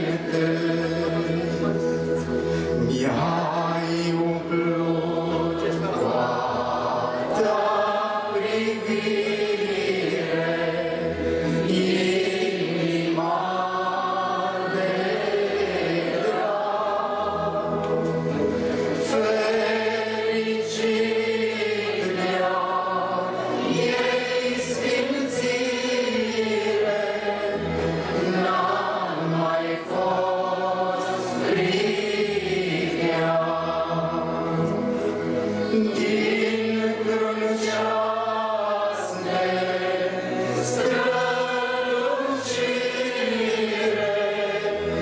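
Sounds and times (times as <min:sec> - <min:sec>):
group singing a hymn: 0:00.0 - 0:45.0.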